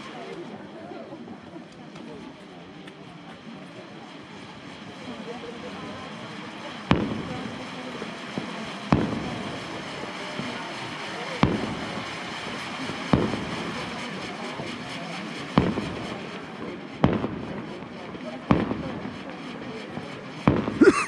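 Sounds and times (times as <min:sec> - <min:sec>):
firework fountain hissing: 0:00.0 - 0:21.0
firework bangs: 0:05.8 - 0:21.0.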